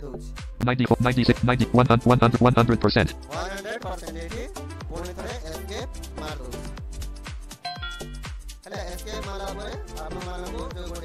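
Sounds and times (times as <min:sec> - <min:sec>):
bright chime: 0:07.7 - 0:08.3.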